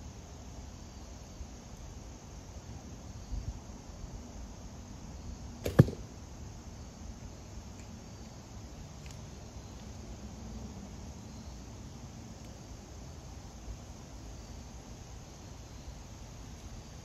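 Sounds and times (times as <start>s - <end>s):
bowstring snap: 5.6s - 6.0s.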